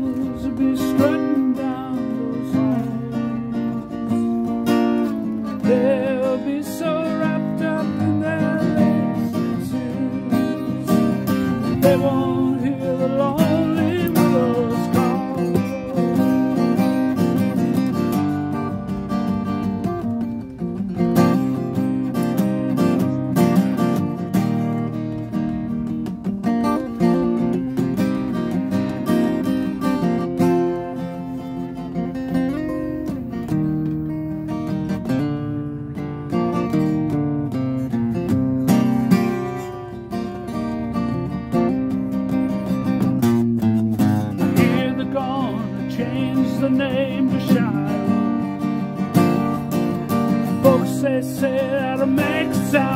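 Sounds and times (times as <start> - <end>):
acoustic guitar strumming: 0.0 - 52.9.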